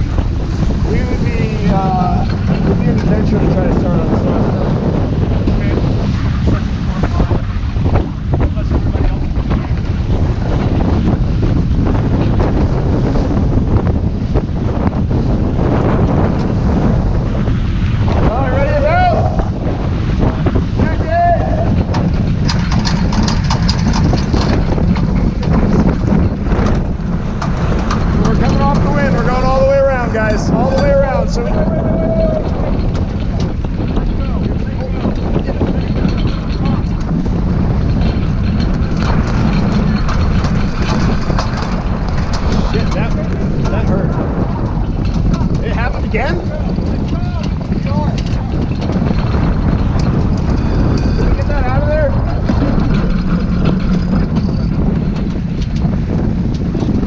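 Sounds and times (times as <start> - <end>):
water rushing past hull: 0.0 - 57.0
wind buffeting microphone: 0.0 - 57.0.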